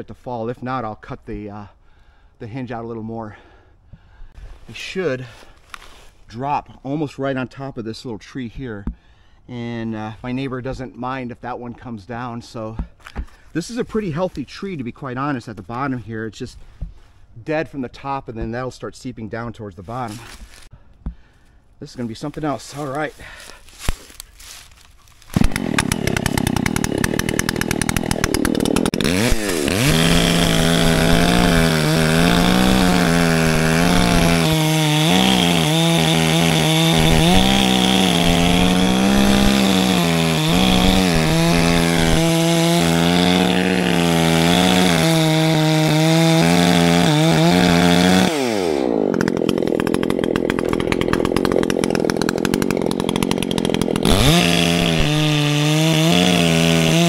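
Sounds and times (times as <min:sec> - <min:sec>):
chainsaw cutting wood: 0:22.2 - 0:57.0.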